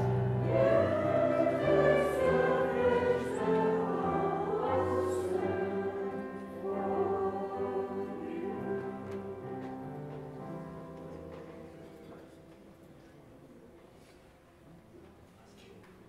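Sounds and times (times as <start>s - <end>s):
choir singing a hymn: 0.0s - 10.7s
held keyboard chords: 0.0s - 11.8s.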